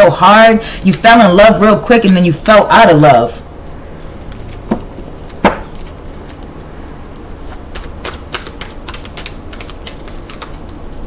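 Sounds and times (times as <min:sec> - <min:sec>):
low steady hum: 0:00.0 - 0:11.0
cards shuffling and clicking: 0:07.2 - 0:11.0.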